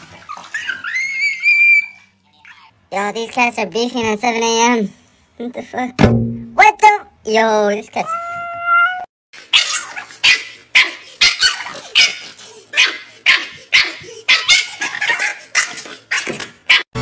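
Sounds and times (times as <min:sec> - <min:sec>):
small dog barking: 0:12.8 - 0:16.8.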